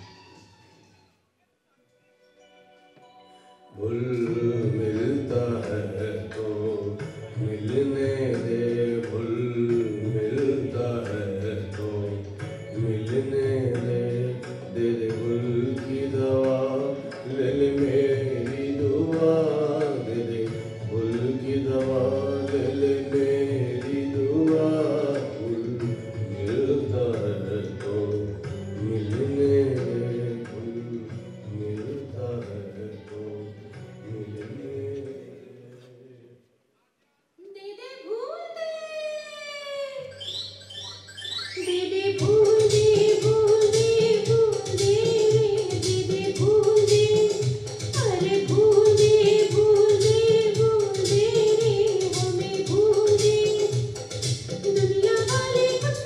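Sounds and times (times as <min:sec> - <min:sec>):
instrumental accompaniment with bass: 0:40.1 - 0:56.0.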